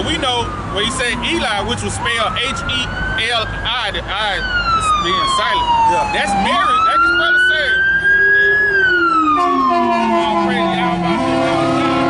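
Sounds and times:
emergency vehicle siren wailing: 0.0 - 12.0
second steady siren tone: 4.4 - 12.0.

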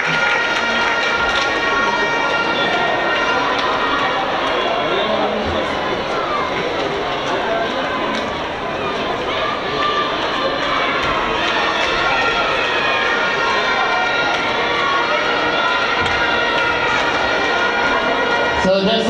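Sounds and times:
crowd voices calling out: 0.0 - 19.0.

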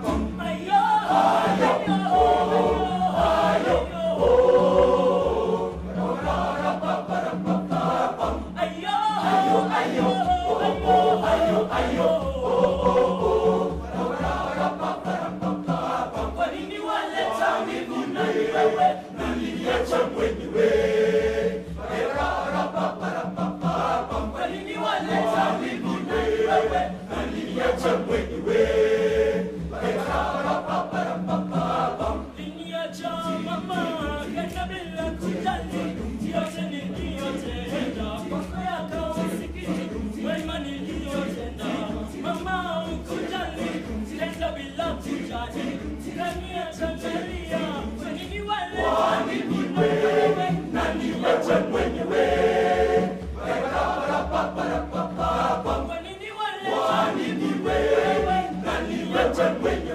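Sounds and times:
male choir singing in parts: 0.0 - 59.9.

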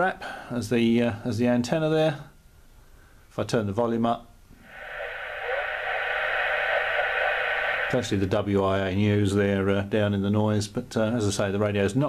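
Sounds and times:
radio band noise hiss: 4.6 - 8.9.

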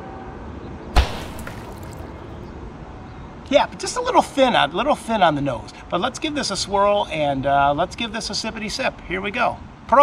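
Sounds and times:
sharp low knock: 1.0 - 2.2.

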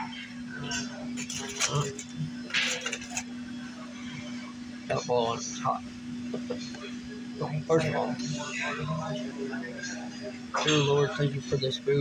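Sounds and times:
faint background voices: 0.0 - 12.0
low electrical hum: 0.0 - 12.0.

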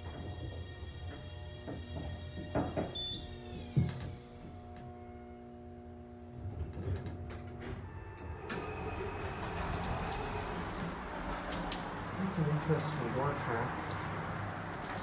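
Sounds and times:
elevator drive whine: 0.0 - 15.0
steady elevator hum: 0.0 - 15.0
elevator doors sliding open: 6.4 - 15.0
elevator car stopping thud: 6.7 - 12.0.

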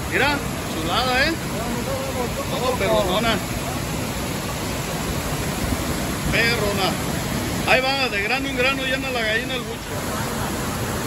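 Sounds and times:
water rushing down spillway: 0.0 - 11.0.

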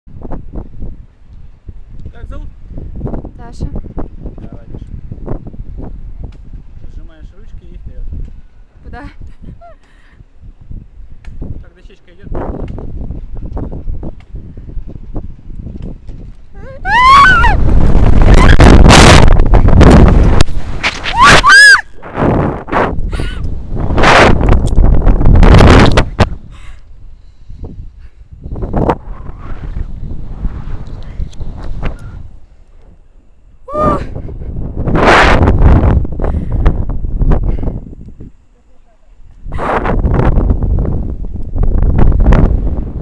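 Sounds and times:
wind rushing over microphone: 0.1 - 38.4, 39.2 - 43.0
short high screams: 16.6 - 17.6, 21.0 - 21.9.

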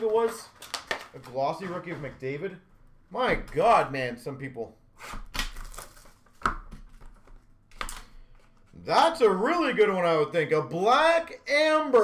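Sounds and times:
hands handling cards in plastic: 0.0 - 2.1, 5.4 - 8.7.

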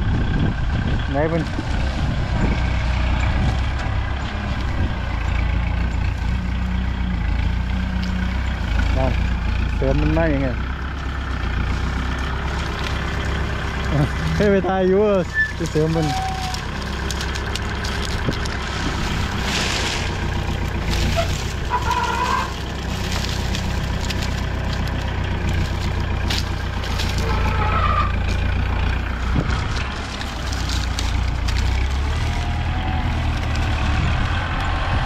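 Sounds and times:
tractor diesel engine running: 0.0 - 35.0.

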